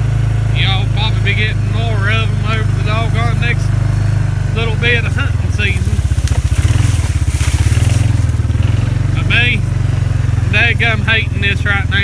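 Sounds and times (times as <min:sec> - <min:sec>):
atv engine running: 0:00.0 - 0:12.0
brush scraping against vehicle: 0:04.0 - 0:09.4.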